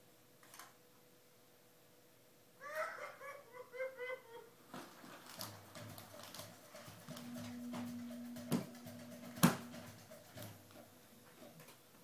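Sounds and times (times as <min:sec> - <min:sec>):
baby giggling: 0:02.6 - 0:04.6
baby walker knocking toys: 0:05.4 - 0:10.9.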